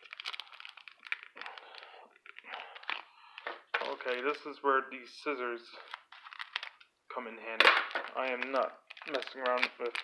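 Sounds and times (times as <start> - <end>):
foil wrapper crinkling: 0.0 - 4.4, 5.8 - 6.9, 7.7 - 10.0.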